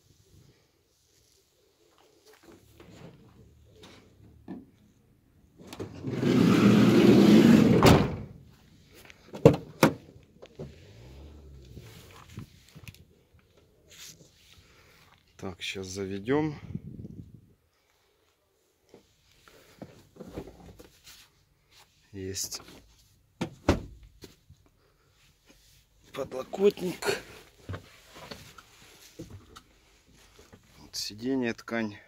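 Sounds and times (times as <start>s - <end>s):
sliding door slamming shut: 5.8s - 8.4s
sliding door rolling on track: 5.9s - 8.2s
rustling: 24.2s - 31.0s.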